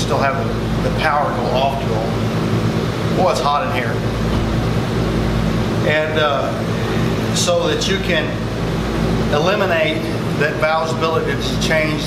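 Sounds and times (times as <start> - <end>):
low mechanical droning hum: 0.0 - 12.0.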